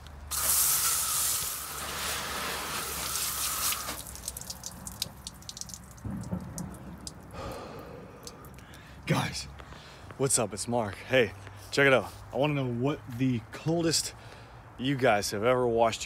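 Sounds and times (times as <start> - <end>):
hose spraying water: 0.3 - 6.0
water dripping and splattering: 0.3 - 9.0.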